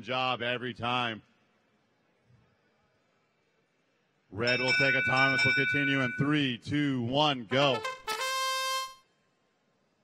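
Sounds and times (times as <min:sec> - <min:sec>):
electronic buzzer horn: 0:07.5 - 0:09.1.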